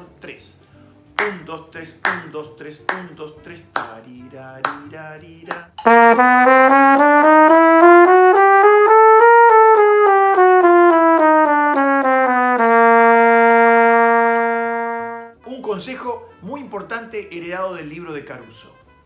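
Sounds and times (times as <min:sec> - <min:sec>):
flugelhorn playing a scale: 0:05.8 - 0:15.4.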